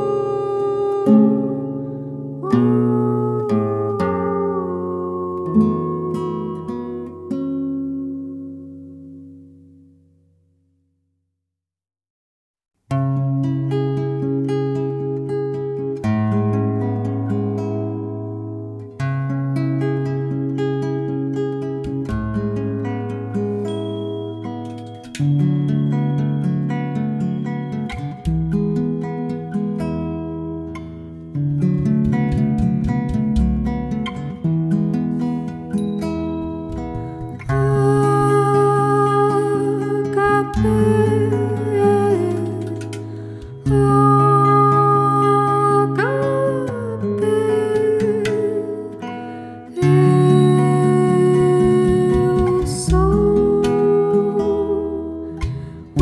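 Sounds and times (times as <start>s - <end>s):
person humming: 0.0s - 1.8s, 2.4s - 7.3s, 37.2s - 48.9s, 49.7s - 56.0s
acoustic guitar music: 0.0s - 10.7s, 12.9s - 56.0s.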